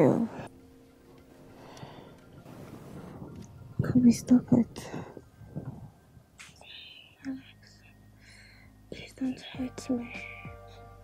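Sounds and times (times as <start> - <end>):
person whispering: 6.4 - 8.0, 8.9 - 10.6.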